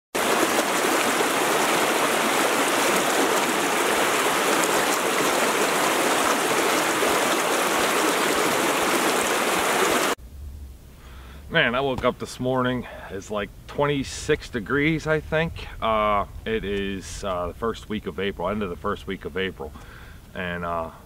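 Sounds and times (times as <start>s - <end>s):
running water rushing: 0.2s - 10.2s.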